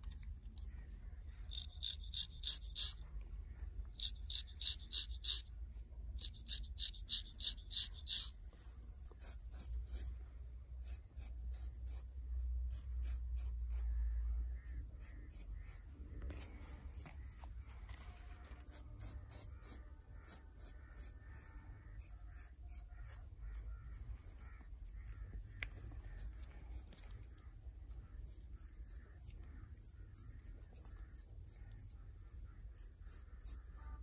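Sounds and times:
razor scraping hair: 1.5s - 3.0s, 4.0s - 5.5s, 6.2s - 8.4s, 9.2s - 10.1s, 12.7s - 13.9s, 18.0s - 23.7s.

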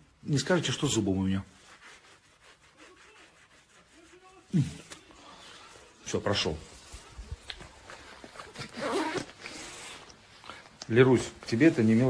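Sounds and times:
soft hissing rustle: 9.4s - 12.0s.

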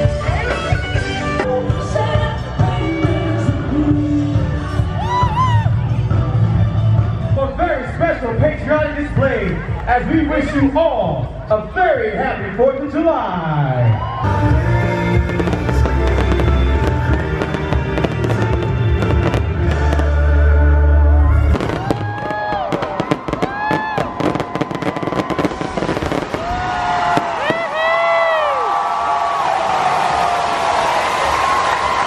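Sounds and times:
bass-heavy music: 0.0s - 23.6s
crowd noise: 0.0s - 32.0s
fireworks crackling bangs: 14.9s - 20.3s, 21.5s - 27.8s.

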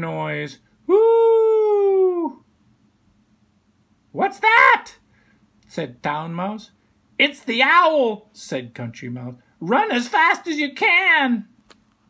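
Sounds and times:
person imitating owl hoot: 0.9s - 2.4s.

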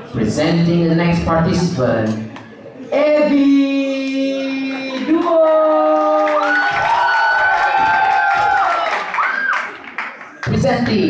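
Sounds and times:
audience cheering: 5.3s - 10.0s
high-pitched whoops: 6.2s - 9.8s.

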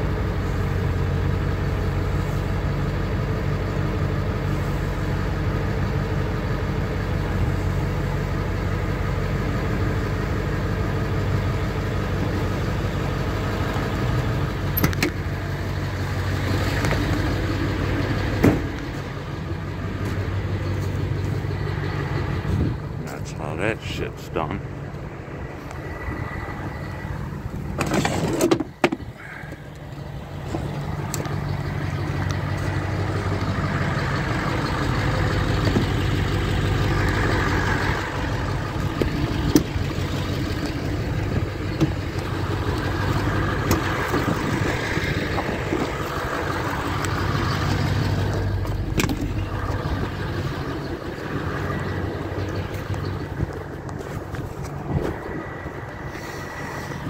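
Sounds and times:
vehicle engine humming: 0.0s - 57.0s.

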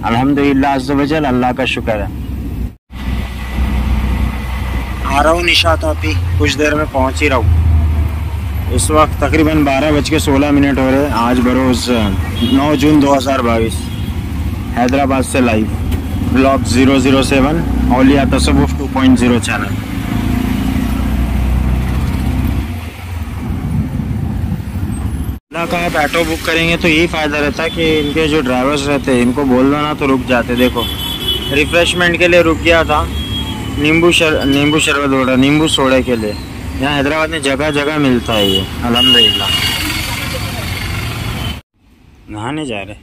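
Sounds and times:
auto-rickshaw engine rumble: 0.0s - 41.6s
car road and engine rumble: 0.0s - 43.0s.

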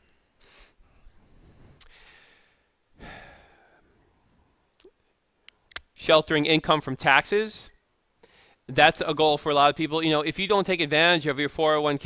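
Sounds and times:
faint mouth clicks: 4.8s - 5.9s.

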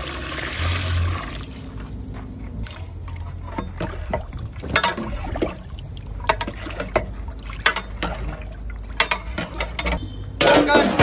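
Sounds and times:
water pouring into a pot: 0.0s - 1.5s.

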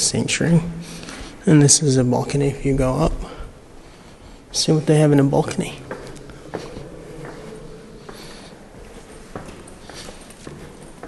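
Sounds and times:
footsteps on indoor stairs: 3.5s - 11.0s.

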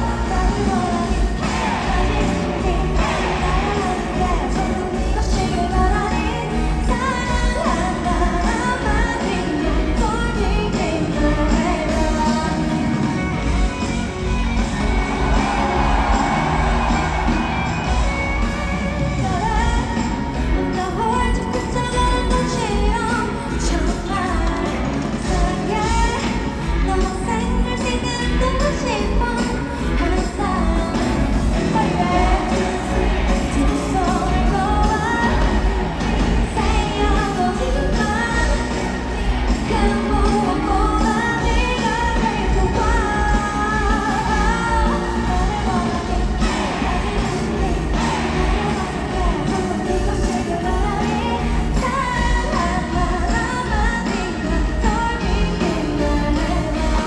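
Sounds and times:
crowd cheering: 0.0s - 8.6s, 11.8s - 22.6s, 26.1s - 57.0s
woman singing: 0.0s - 15.4s, 18.0s - 57.0s
live rock band playing: 0.0s - 57.0s.

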